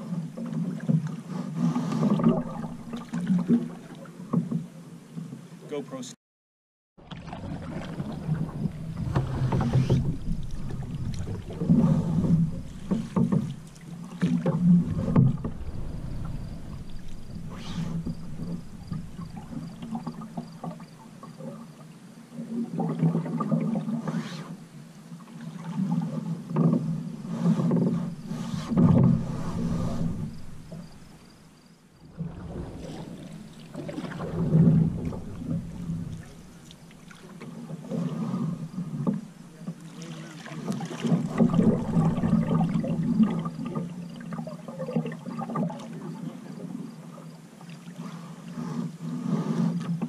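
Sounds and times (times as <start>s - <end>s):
paddle swishing in water: 0.0s - 5.4s, 7.0s - 50.0s
steady low rumble: 2.3s - 3.1s, 7.2s - 21.0s, 27.9s - 37.1s.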